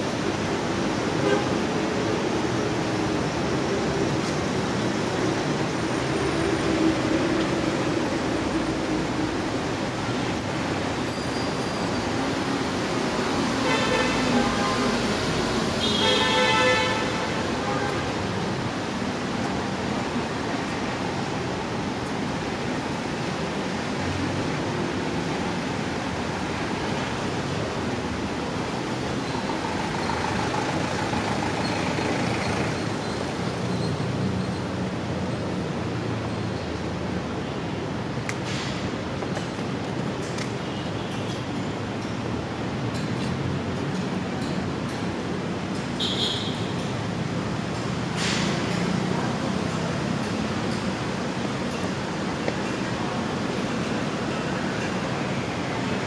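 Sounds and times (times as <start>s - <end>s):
road traffic noise: 0.0s - 56.0s
vehicle horn: 15.8s - 18.0s.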